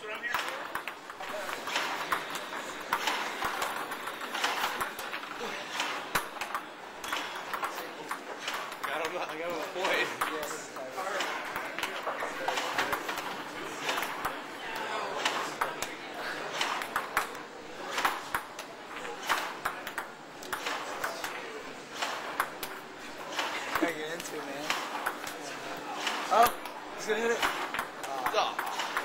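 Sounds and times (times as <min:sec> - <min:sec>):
crowd chatter: 0:00.0 - 0:29.0
table tennis ball clicking: 0:00.3 - 0:05.4, 0:06.0 - 0:10.6, 0:16.6 - 0:17.4, 0:18.0 - 0:21.4, 0:26.5 - 0:29.0.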